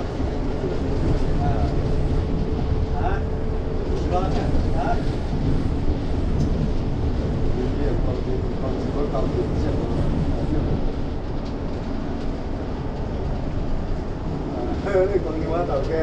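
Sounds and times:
bus engine rumble: 0.0 - 16.0.

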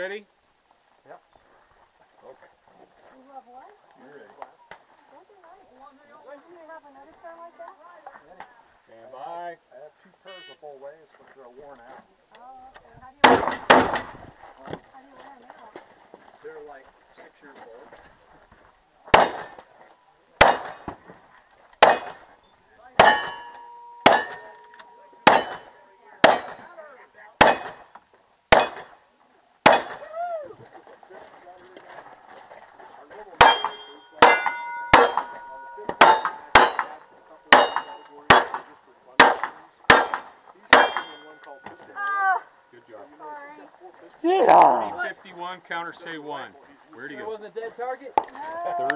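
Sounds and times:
steel targets ringing: 23.0 - 26.7, 33.4 - 41.8.

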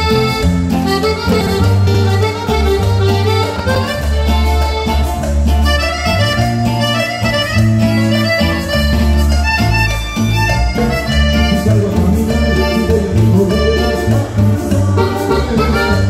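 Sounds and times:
accordion-like lead melody: 0.0 - 16.0
percussion: 0.0 - 16.0
pulsing bass line: 0.0 - 16.0.

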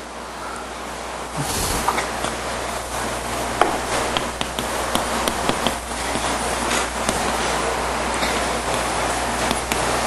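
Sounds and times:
chalk taps and scrapes on board: 3.6 - 7.6, 8.2 - 9.9.

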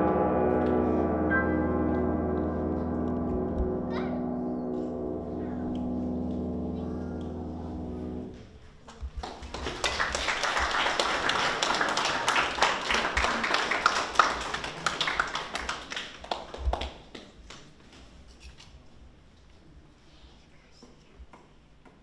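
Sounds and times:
audience clapping: 8.8 - 18.0.

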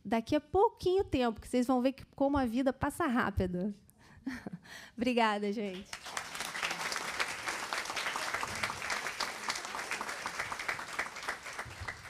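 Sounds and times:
audience applauding: 5.8 - 12.0.

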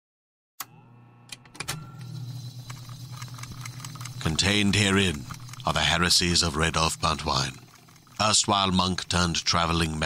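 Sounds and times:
low steady hum: 0.7 - 10.0.

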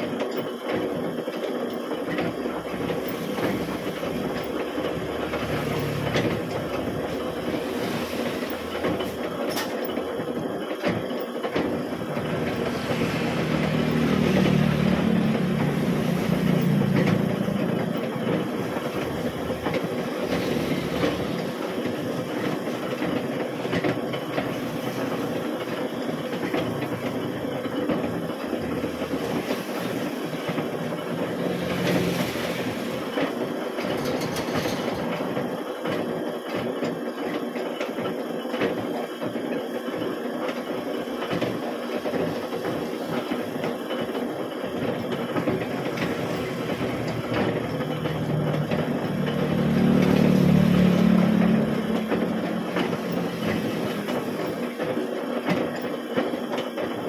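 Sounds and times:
machine tool cutter clattering: 33.8 - 35.4.

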